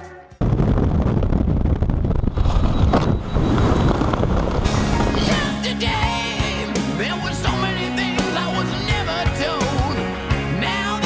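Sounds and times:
wind rushing over microphone: 0.4s - 5.8s
rock music: 3.8s - 11.0s.

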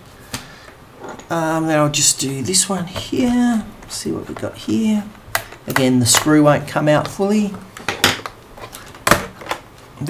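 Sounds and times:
plastic cover sharp clicks: 5.3s - 6.4s.

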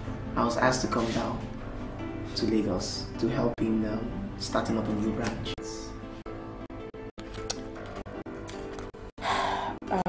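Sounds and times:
soft film music: 0.0s - 10.0s
person sighing: 9.2s - 10.0s.

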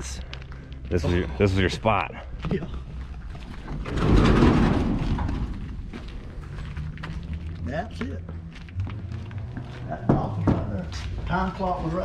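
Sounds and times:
metal shed door scraping open: 3.8s - 5.5s.

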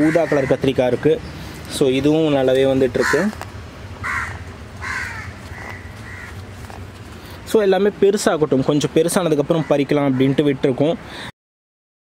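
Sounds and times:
bird calling: 0.0s - 7.4s.

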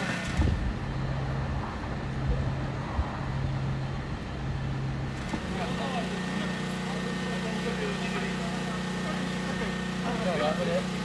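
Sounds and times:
vehicle engine humming: 0.0s - 11.0s
people talking: 5.4s - 11.0s.

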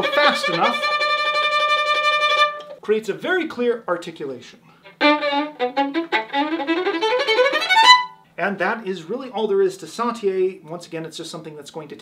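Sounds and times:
violin bounced short notes: 0.0s - 2.8s.

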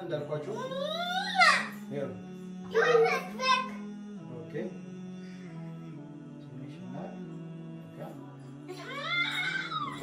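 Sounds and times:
background music: 0.0s - 10.0s
child whining: 0.6s - 1.8s, 8.8s - 10.0s.

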